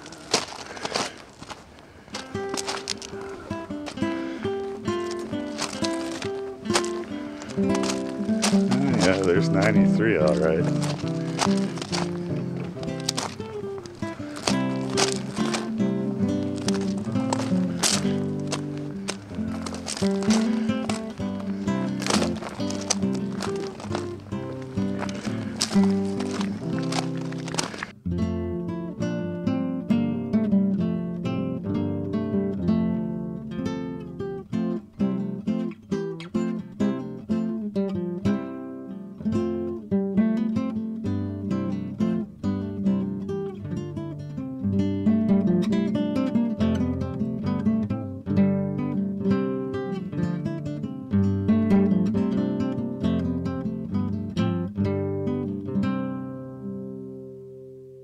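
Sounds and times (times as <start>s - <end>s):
acoustic guitar music: 0.0s - 58.0s.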